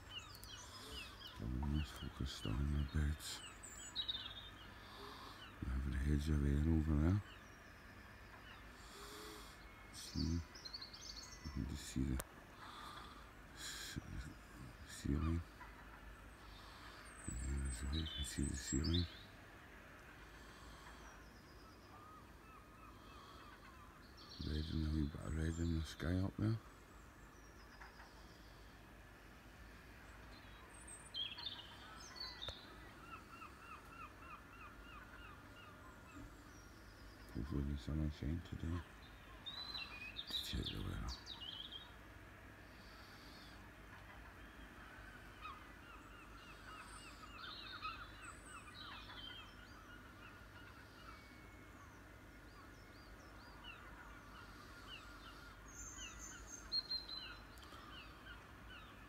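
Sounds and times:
faint birdsong: 0:00.0 - 0:59.0.

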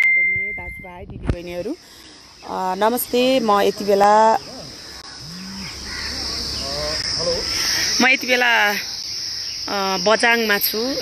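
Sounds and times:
insect chirring: 0:00.0 - 0:11.0.

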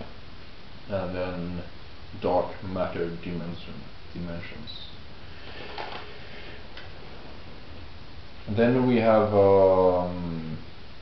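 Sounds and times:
low steady background: 0:00.0 - 0:11.0.

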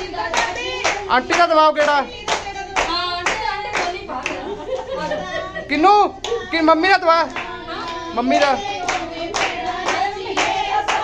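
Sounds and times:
women singing together: 0:00.0 - 0:11.0
women clapping in time: 0:00.3 - 0:04.9, 0:07.2 - 0:11.0.

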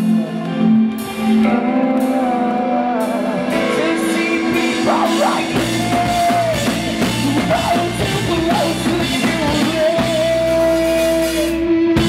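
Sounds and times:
bass guitar: 0:00.0 - 0:12.0
sustained guitar chords: 0:00.0 - 0:12.0
drum kit: 0:00.9 - 0:12.0.

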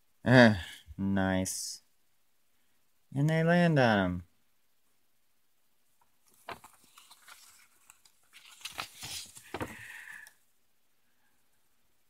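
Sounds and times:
pages rustling and turning: 0:06.2 - 0:10.3.

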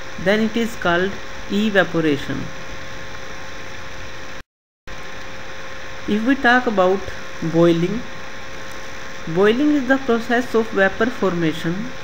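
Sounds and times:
faint electrical hum: 0:00.0 - 0:12.0
recording hiss: 0:00.0 - 0:12.0.

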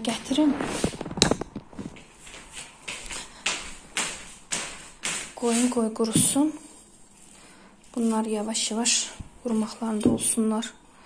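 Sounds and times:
shuffling footsteps on wooden floor: 0:00.2 - 0:06.7.

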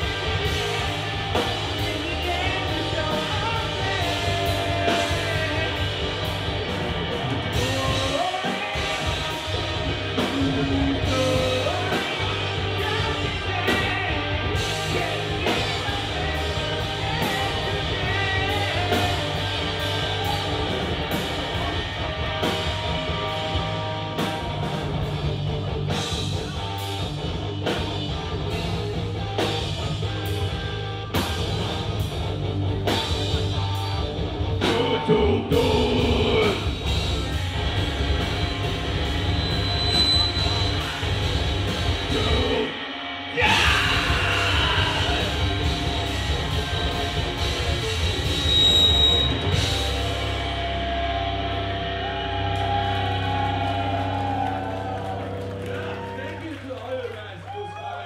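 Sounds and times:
live rock band playing: 0:00.0 - 0:56.8
electric guitars: 0:00.0 - 0:57.2.

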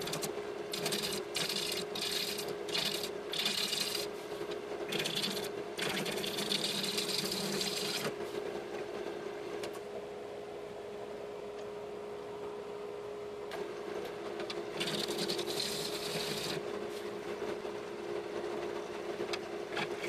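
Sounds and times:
machine hum: 0:00.0 - 0:20.0
gouge scraping wood on lathe: 0:00.7 - 0:04.1, 0:04.9 - 0:08.1, 0:14.8 - 0:16.6.

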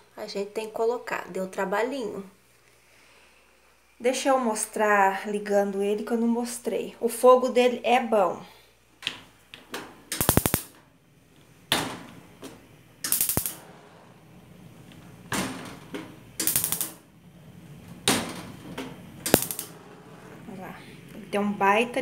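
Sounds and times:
gas stove igniter clicking: 0:13.0 - 0:13.6, 0:15.9 - 0:17.0.

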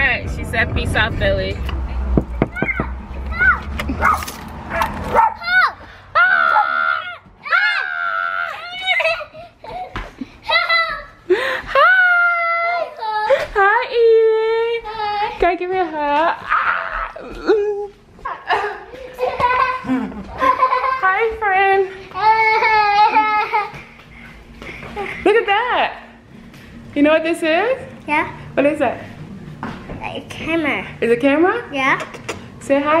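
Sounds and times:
young child's high-pitched voice: 0:02.5 - 0:03.7, 0:05.4 - 0:05.9, 0:10.4 - 0:11.2, 0:31.7 - 0:32.2
girl squealing excitedly: 0:05.4 - 0:09.3.

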